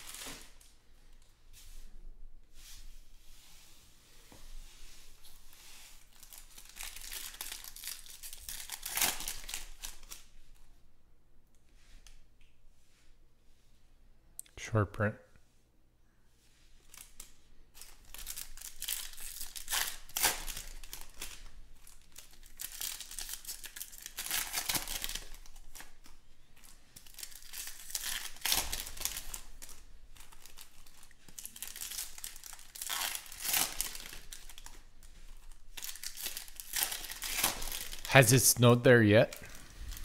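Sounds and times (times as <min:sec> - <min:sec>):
wrappers crinkling and tearing: 0:00.0 - 0:01.3, 0:06.0 - 0:10.7, 0:16.8 - 0:38.4, 0:39.3 - 0:40.0.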